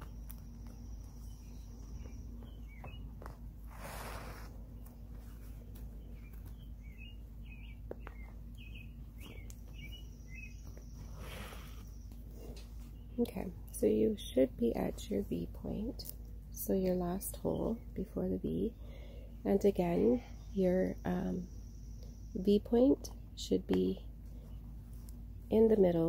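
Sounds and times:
small birds chirping: 0.0 - 26.0
steady low hum: 0.0 - 26.0.

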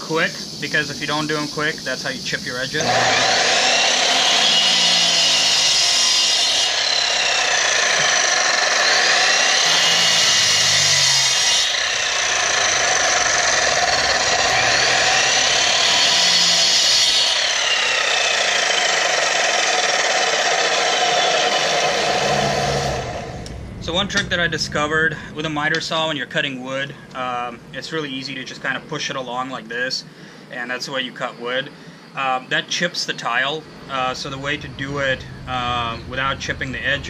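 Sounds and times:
miter saw cutting tile: 2.6 - 24.4.

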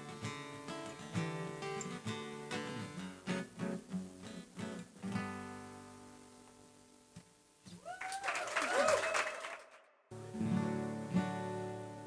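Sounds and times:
acoustic guitar strumming chords: 0.0 - 6.5, 10.1 - 12.0
audience cheering and whooping: 7.8 - 9.8
audience clapping: 7.9 - 9.9.

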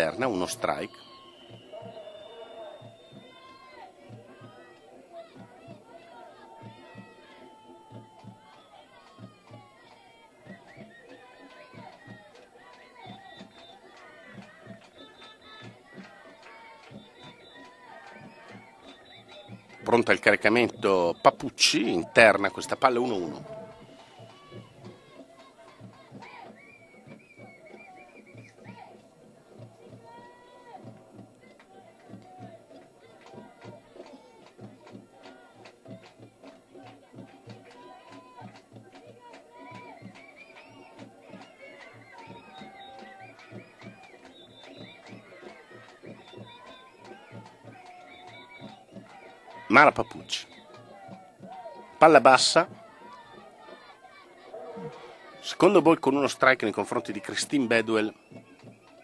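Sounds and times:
crowd chattering and chanting: 0.0 - 59.0
steady drum beat: 13.1 - 40.2.

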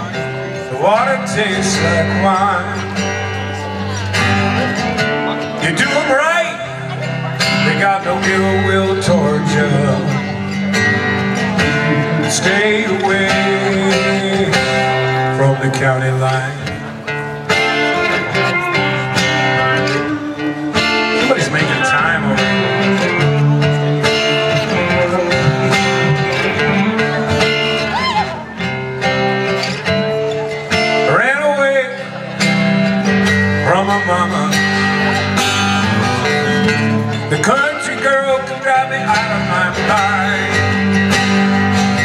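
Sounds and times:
acoustic guitars strumming chords: 0.0 - 42.0
lead guitar sliding notes: 0.0 - 42.0.

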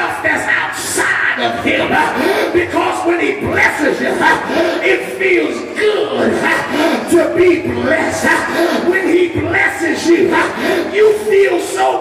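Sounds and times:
man preaching through pa system: 0.0 - 12.0.

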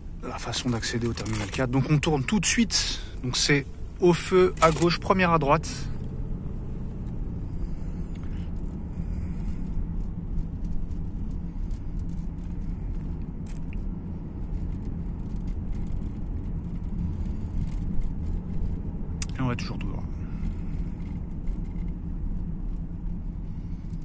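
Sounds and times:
car cabin road and engine rumble: 0.0 - 24.0.

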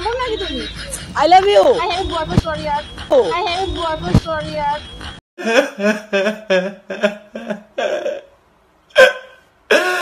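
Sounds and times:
man sobbing: 5.4 - 10.0.

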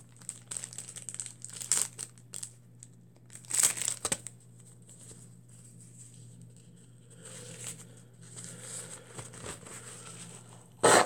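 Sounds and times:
tissue packet crinkling: 0.0 - 2.6, 3.3 - 4.3.

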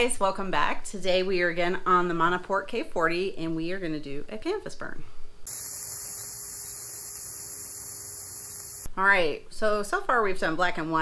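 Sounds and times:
steady hiss: 5.5 - 8.9.

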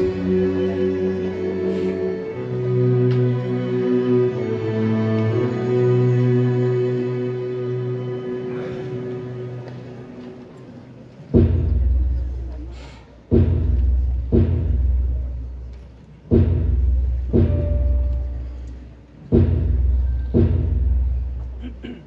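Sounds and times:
deep drum booming: 11.4 - 12.6, 13.3 - 15.5, 16.3 - 18.5, 19.3 - 21.6.

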